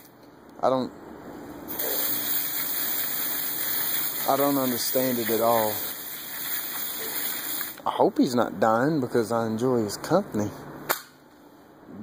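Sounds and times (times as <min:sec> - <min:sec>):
water hose spraying: 0:01.7 - 0:07.8.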